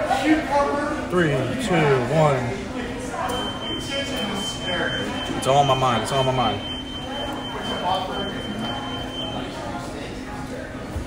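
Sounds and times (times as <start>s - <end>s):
faint restaurant chatter: 0.0s - 11.0s.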